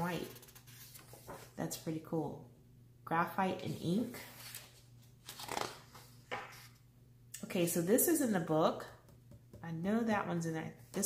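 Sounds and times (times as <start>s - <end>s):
book pages turning: 0.1s - 1.6s, 3.6s - 6.8s.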